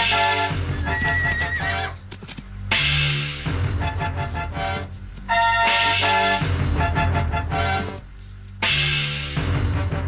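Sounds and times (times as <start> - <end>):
dramatic music score: 0.0 - 10.0
horse neighing: 0.7 - 2.0
hoof clops: 0.7 - 2.8.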